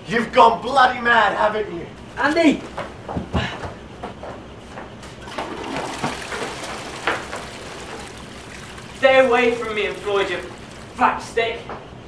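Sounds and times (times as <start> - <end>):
water rushing: 5.2 - 11.4.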